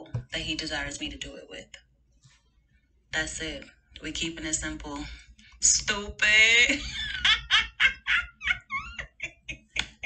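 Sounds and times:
woman giggling: 0:06.7 - 0:10.0.

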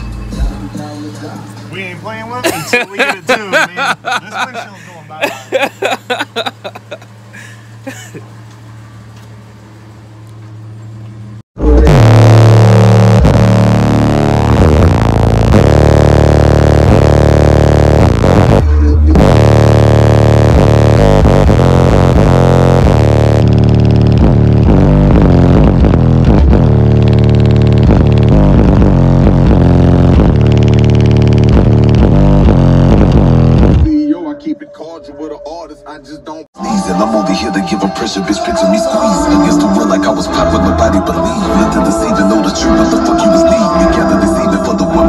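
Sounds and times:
bass-heavy rap music on car stereo: 0:00.0 - 0:06.5, 0:11.6 - 0:45.0.

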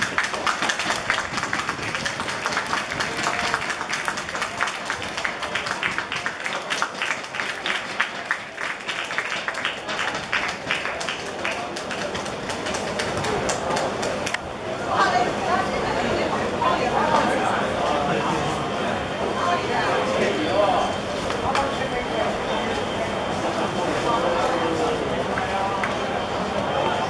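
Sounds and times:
crowd applauding: 0:00.0 - 0:14.4, 0:24.6 - 0:27.0
voices: 0:00.0 - 0:27.0.

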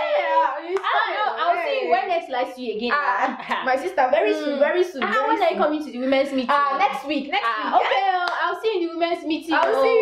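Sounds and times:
sharp hand claps: 0:00.7 - 0:01.0, 0:09.6 - 0:09.9.

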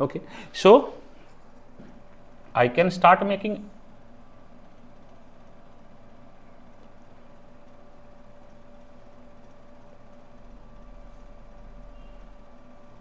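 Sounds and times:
faint constant whine: 0:00.0 - 0:13.0
low room hum: 0:00.0 - 0:13.0.

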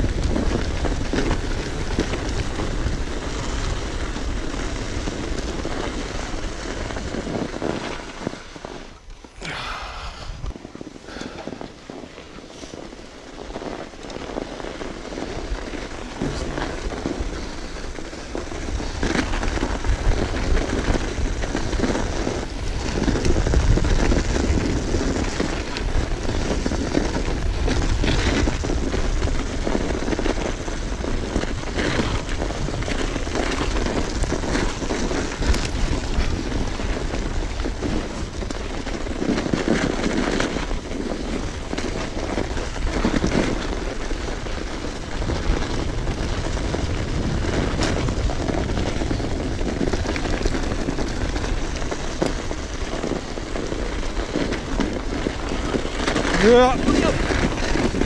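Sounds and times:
crackles from bike tyres: 0:00.0 - 0:58.0
tyres rolling on snow: 0:00.0 - 0:58.0
wind rush on microphone: 0:00.0 - 0:58.0.

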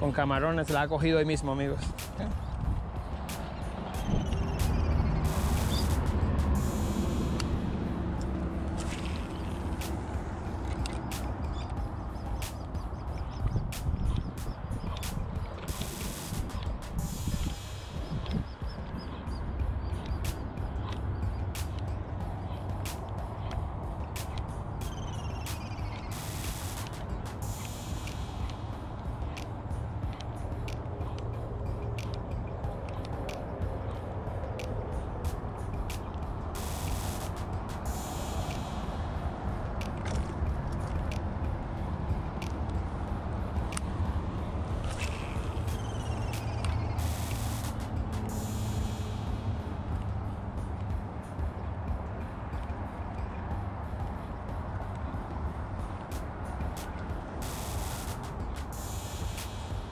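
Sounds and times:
wind buffeting microphone: 0:00.0 - 0:26.2
sharp clicks: 0:01.8 - 0:28.7, 0:44.8 - 0:49.3, 0:56.0 - 0:59.8
short hissing bursts: 0:25.5 - 0:28.4, 0:36.6 - 0:39.0, 0:47.0 - 0:49.4, 0:57.4 - 0:59.8.

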